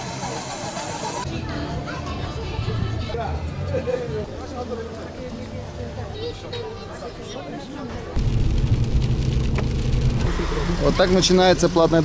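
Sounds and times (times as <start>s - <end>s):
road rumble: 7.9s - 12.0s
rain and tyre spray hiss: 8.2s - 11.7s.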